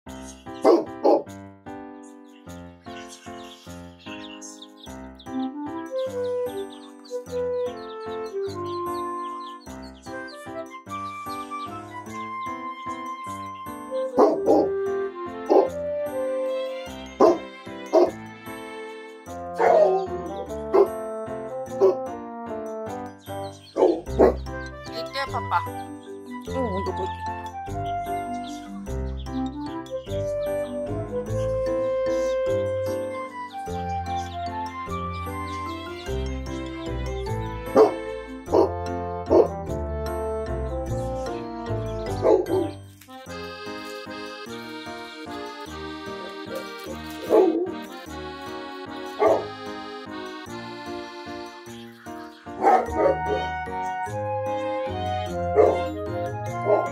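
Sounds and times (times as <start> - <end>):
background music: 0.1 - 56.9
dog barking: 0.6 - 1.4, 14.2 - 14.7, 15.5 - 15.7, 17.2 - 18.2, 19.6 - 20.1, 20.7 - 20.9, 21.8 - 22.0, 23.8 - 24.4, 37.7 - 38.7, 39.3 - 39.6, 42.2 - 42.8, 46.2 - 47.8, 49.2 - 49.5, 52.6 - 53.6, 55.6 - 55.9, 56.6 - 56.9.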